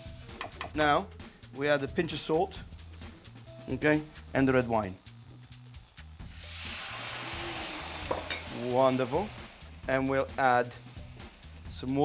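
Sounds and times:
wine sizzling in hot frying pan: 1.2 - 12.0.

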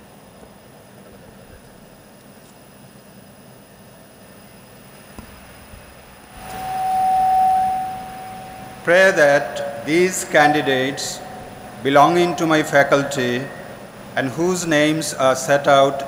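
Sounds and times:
microphone feedback ring: 6.3 - 13.9.

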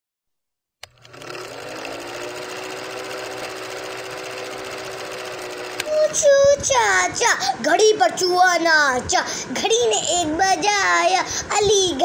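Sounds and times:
projector click: 0.8 - 2.0, 5.5 - 6.0
film projector whirring: 0.8 - 7.2.

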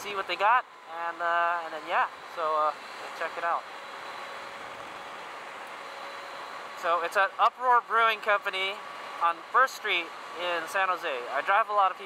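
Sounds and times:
man speaking: 0.0 - 3.6, 6.8 - 12.0
faint steady whine: 0.0 - 12.0
wind and road noise: 0.0 - 12.0.

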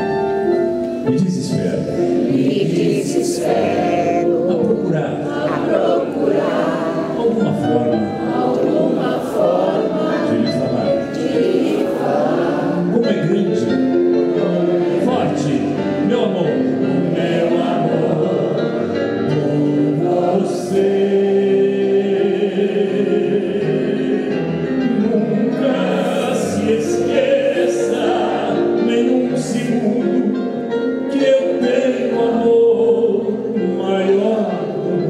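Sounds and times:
grand piano accompaniment: 0.0 - 35.0
audience singing along: 2.0 - 35.0.

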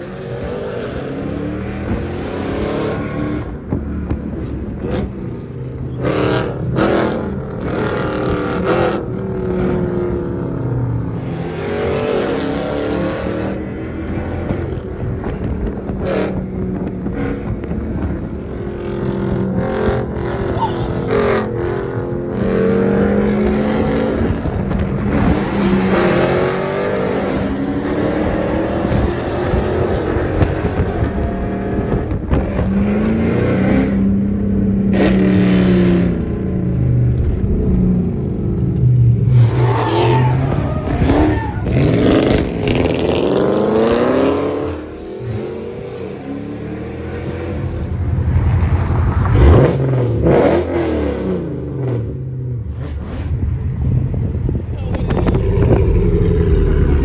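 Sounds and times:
car engine revving and accelerating: 0.0 - 57.0.

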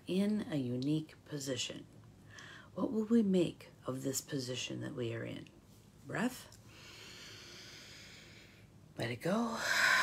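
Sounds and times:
woman breathing in through nose: 6.7 - 8.8.

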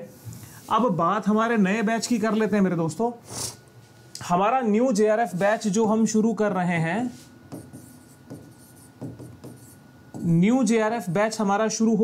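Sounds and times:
faint high hum: 0.0 - 12.0
pen scratching on whiteboard: 7.5 - 10.4.

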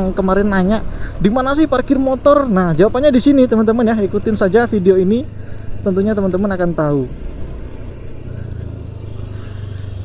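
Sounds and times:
motorcycle engine running: 0.0 - 10.0
traffic noise: 0.0 - 10.0.

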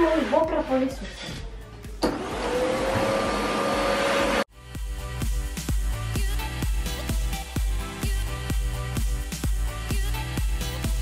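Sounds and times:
background music with steady beat: 0.0 - 11.0
vacuum cleaner motor whine: 2.0 - 4.5.

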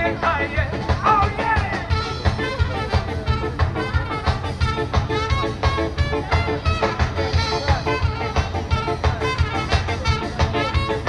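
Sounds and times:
fast steady drum beat: 0.0 - 11.0
guitars: 0.0 - 11.0
live band playing up-tempo song: 0.0 - 11.0.

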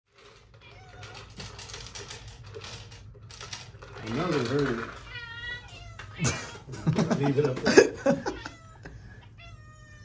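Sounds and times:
cats meowing faintly: 0.5 - 1.5, 4.8 - 6.8, 8.0 - 10.0.

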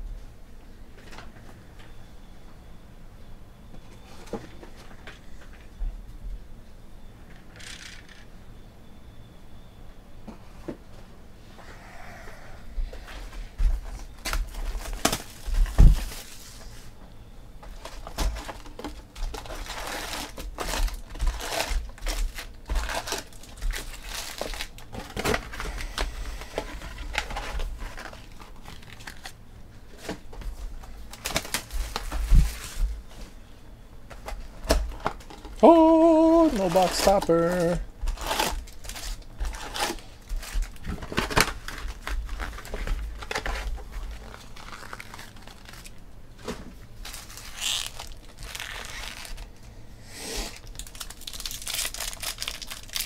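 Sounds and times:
card packs rustling and crinkling: 13.0 - 17.0, 17.6 - 33.4, 34.0 - 49.7, 50.6 - 53.0.

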